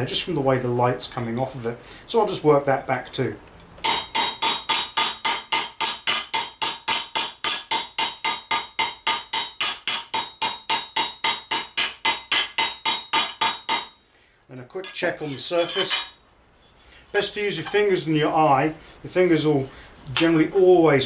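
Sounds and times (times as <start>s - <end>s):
hammer tapping metal plate: 3.8s - 14.0s.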